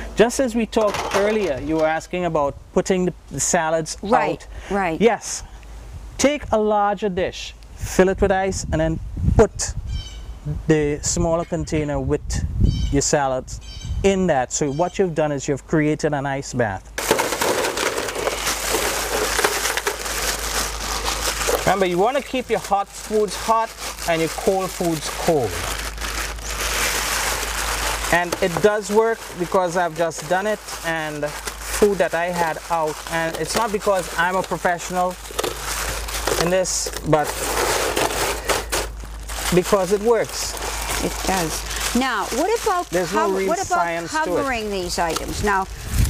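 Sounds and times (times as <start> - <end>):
ice cubes clattering into foil pan: 0.7 - 2.1, 17.0 - 44.1
plastic bag crinkling: 17.0 - 46.0.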